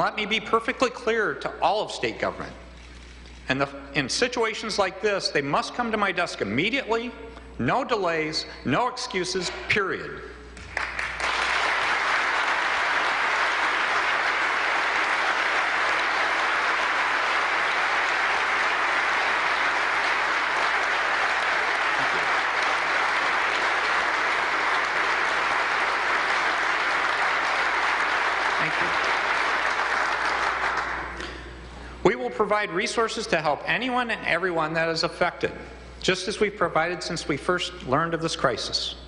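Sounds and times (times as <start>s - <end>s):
audience applause: 10.6s - 31.2s.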